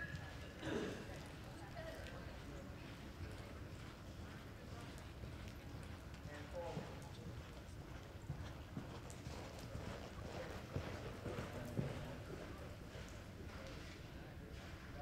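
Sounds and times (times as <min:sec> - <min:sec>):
horse hoofbeats on dirt: 0:01.1 - 0:13.8.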